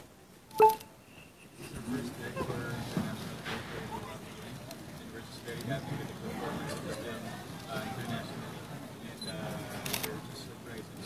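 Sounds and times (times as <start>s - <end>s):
people talking: 1.6s - 11.0s.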